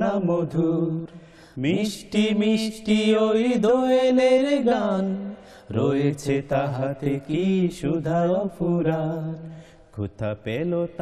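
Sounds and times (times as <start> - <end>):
men singing unaccompanied: 0.0 - 11.0.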